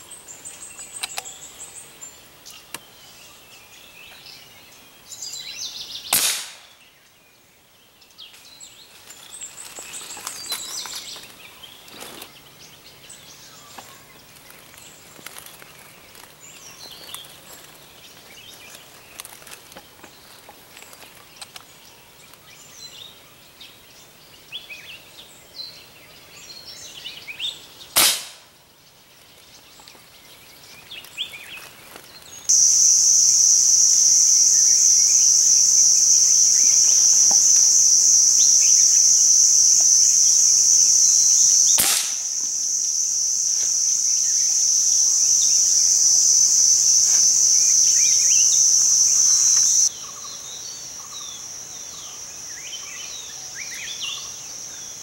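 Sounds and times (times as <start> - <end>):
birds chirping: 0.0 - 55.0
gunshots: 6.2 - 6.7, 28.0 - 28.4, 41.8 - 42.2
high-pitched cicada drone: 32.5 - 55.0.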